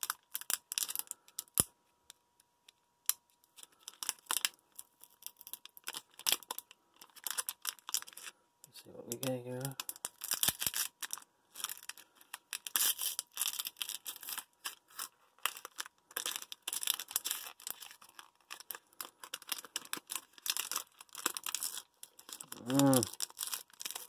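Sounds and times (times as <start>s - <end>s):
foil wrapper crinkling and tearing: 0.0s - 1.7s, 3.1s - 24.0s.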